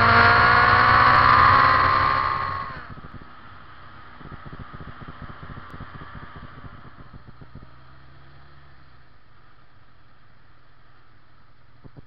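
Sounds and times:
wind noise on microphone: 0:00.0 - 0:08.0, 0:11.8 - 0:12.0
motorcycle engine running: 0:00.0 - 0:10.6.

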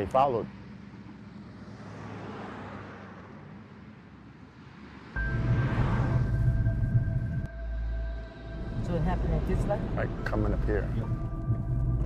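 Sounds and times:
sustained music-like tones: 0:05.2 - 0:12.0.

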